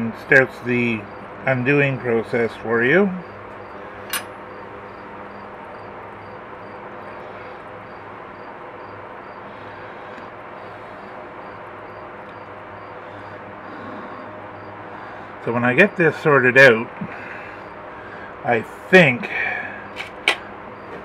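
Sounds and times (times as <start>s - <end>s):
steady hum and hiss: 0.0s - 21.0s
sharp click: 4.1s - 4.3s.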